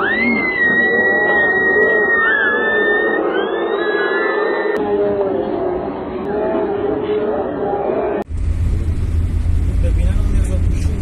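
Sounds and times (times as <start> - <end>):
large crowd noise: 0.0 - 8.3.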